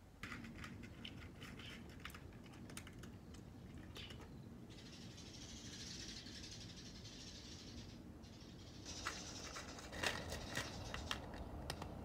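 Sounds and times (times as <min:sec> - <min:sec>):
cat chewing dry kibble: 0:00.3 - 0:04.2.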